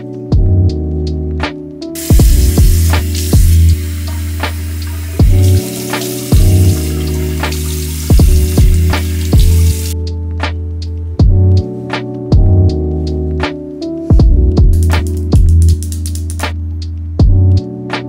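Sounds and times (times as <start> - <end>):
background music with drum beat: 0.0 - 0.8, 1.4 - 12.8, 13.4 - 18.0
faucet water running into basin: 2.0 - 10.0.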